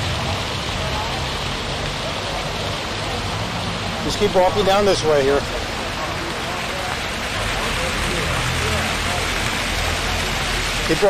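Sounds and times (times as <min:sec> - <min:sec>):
fountain water splashing: 0:00.0 - 0:11.0.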